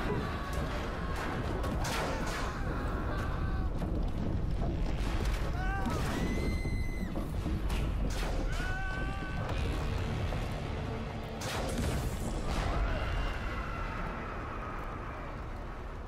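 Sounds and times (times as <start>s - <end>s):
deep rumble of collapsing logs: 0.0s - 11.2s
music: 0.0s - 16.0s.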